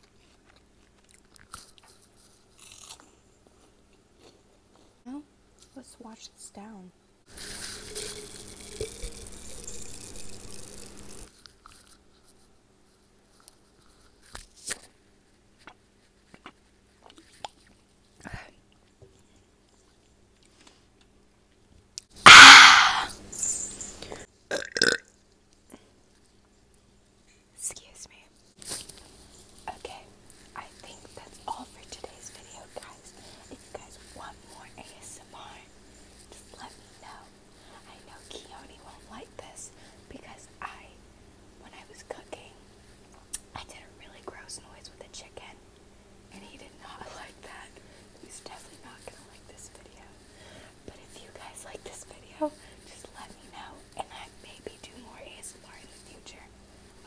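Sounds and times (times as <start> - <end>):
woman whispering: 5.8 - 6.9, 18.2 - 18.6, 27.6 - 28.3, 29.7 - 35.7, 36.3 - 41.0, 41.6 - 42.6, 43.5 - 45.6, 46.3 - 50.2, 50.8 - 56.5
short vocal sounds: 22.2 - 23.2
loud rough burp: 22.3 - 23.1, 24.5 - 25.0.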